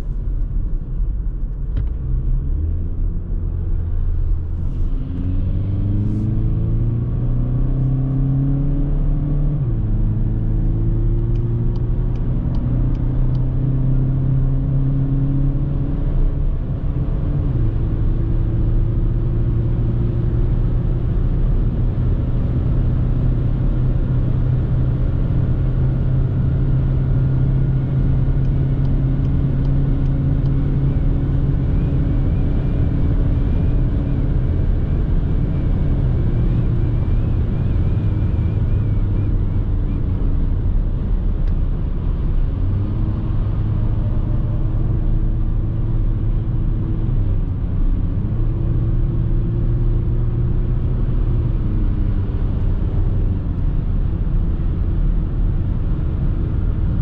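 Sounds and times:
car engine accelerating: 0.0 - 57.0
road and tyre noise: 0.0 - 57.0.

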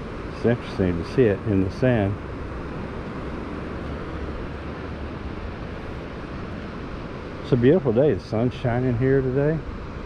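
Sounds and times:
distant surf hiss: 0.0 - 10.0.

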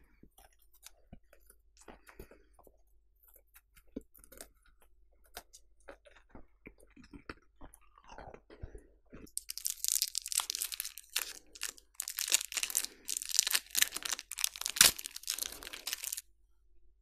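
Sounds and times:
crackling crunches: 5.3 - 16.2
wet mouth sounds: 5.3 - 16.2.

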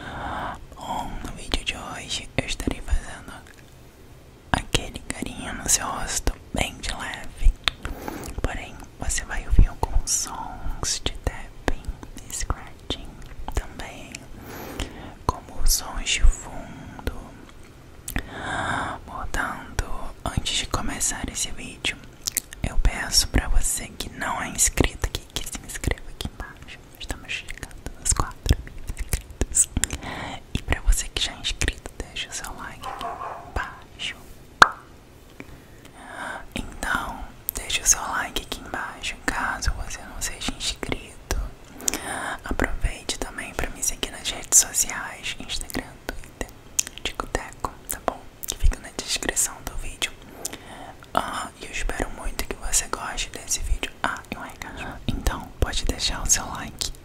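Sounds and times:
close whispering: 0.0 - 3.6, 4.5 - 34.4, 35.8 - 57.0
mouth clicks and smacks: 7.3 - 8.4, 22.2 - 22.6, 25.1 - 31.0, 34.6 - 36.0, 40.8 - 42.8, 45.6 - 48.9.

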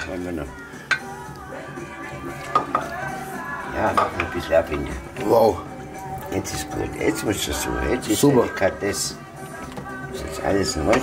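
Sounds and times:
metal spoon scraping pots: 2.4 - 5.4.

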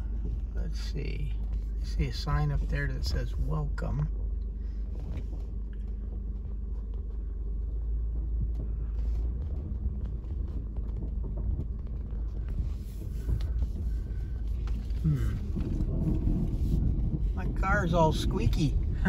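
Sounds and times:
car rumbling over gravel: 0.0 - 19.0.

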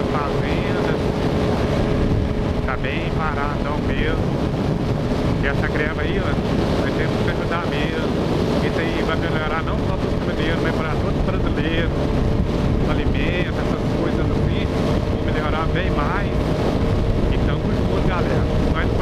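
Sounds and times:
motorcycle engine droning: 0.0 - 19.0
wind rushing over microphone: 0.0 - 19.0.

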